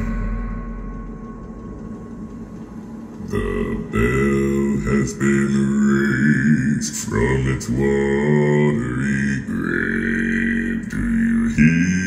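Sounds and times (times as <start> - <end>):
low rumble: 0.0 - 12.0
deep bass male voice singing: 3.2 - 12.0.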